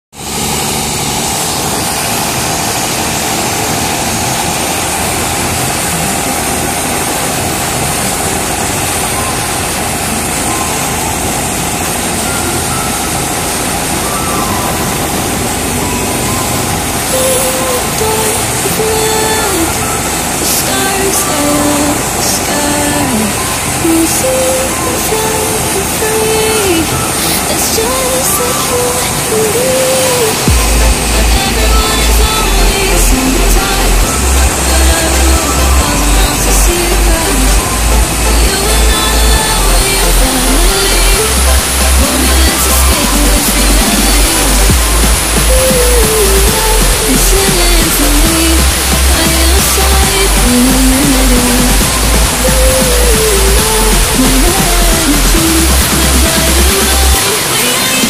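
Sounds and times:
boat engine droning: 0.1 - 58.0
stepped music melody: 30.2 - 58.0.

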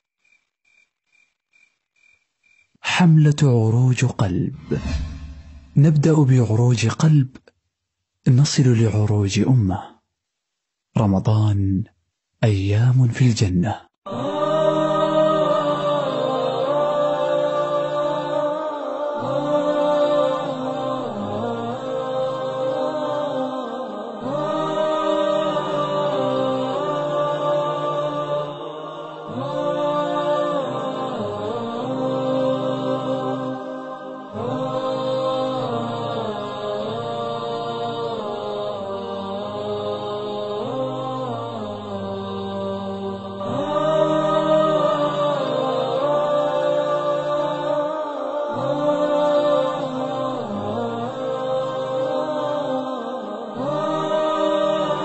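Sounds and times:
wordless vocal chanting: 2.8 - 7.4, 8.3 - 10.0, 11.0 - 55.0
low sustained drone: 4.5 - 6.1.

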